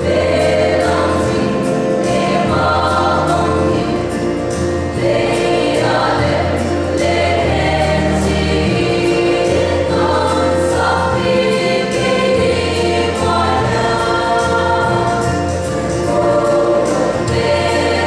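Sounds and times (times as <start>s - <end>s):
low sustained bass notes: 0.0s - 18.0s
women's choir singing a hymn: 0.0s - 18.0s.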